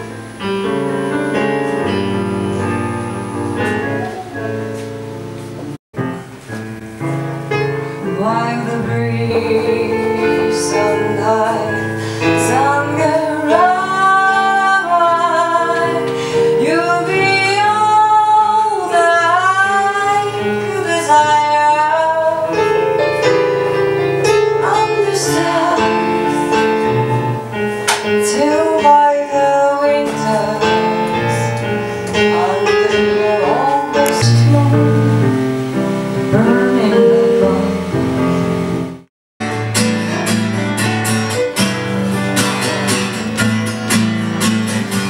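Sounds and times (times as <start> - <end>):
electronic keyboard chords: 0.0 - 45.0
woman singing: 8.0 - 23.3, 24.2 - 27.4, 28.1 - 35.4, 36.2 - 38.0.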